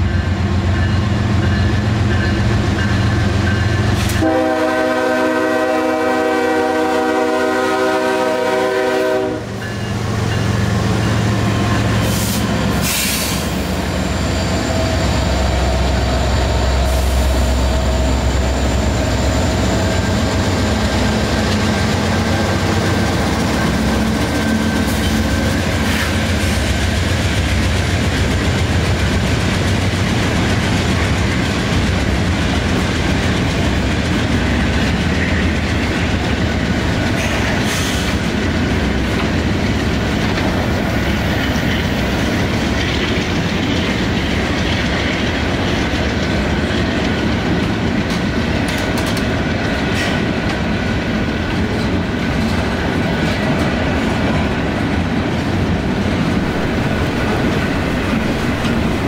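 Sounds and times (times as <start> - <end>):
diesel locomotive engine: 0.0 - 59.0
train wheels clicking over rail joints: 9.5 - 59.0.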